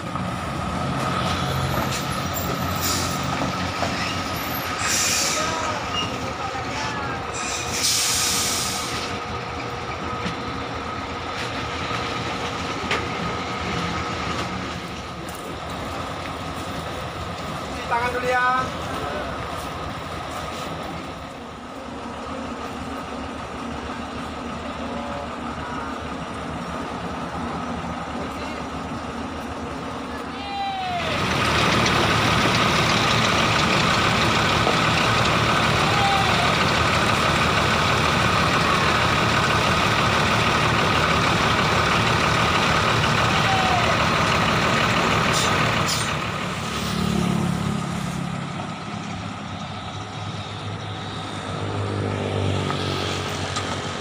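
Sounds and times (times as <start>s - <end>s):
diesel bus engines running: 0.0s - 54.0s.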